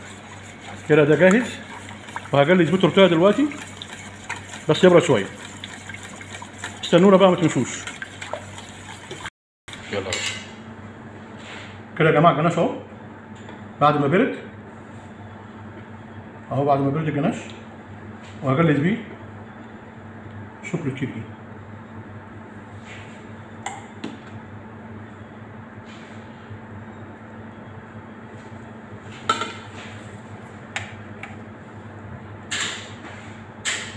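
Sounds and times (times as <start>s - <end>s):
whisk swishing through liquid: 0.0s - 9.8s.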